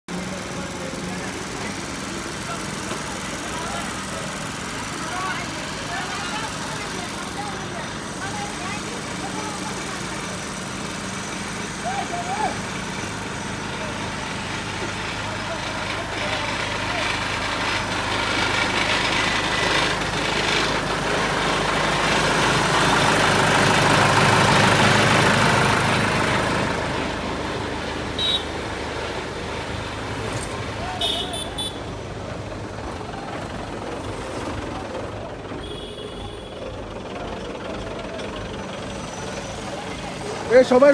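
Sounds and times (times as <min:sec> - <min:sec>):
diesel engine running: 0:00.1 - 0:40.9.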